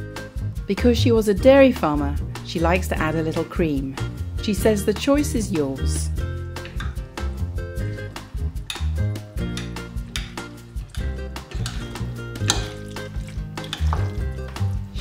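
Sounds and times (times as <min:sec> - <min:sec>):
background music with bass line: 0:00.0 - 0:15.0
utensils clinking on ceramic bowl: 0:08.7 - 0:14.3.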